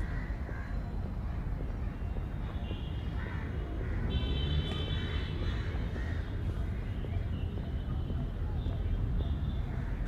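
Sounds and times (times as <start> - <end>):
crows cawing: 0.0 - 0.8, 3.2 - 4.2, 4.9 - 6.5.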